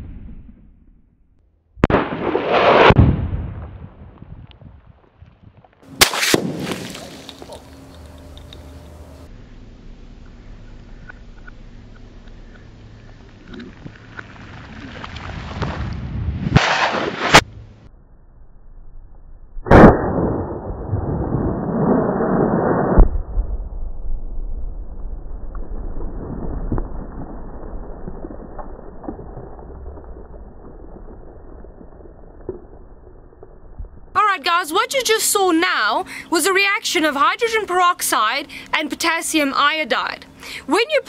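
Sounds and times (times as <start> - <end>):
rifle shots: 1.8 - 3.8, 5.9 - 7.4, 16.5 - 17.4.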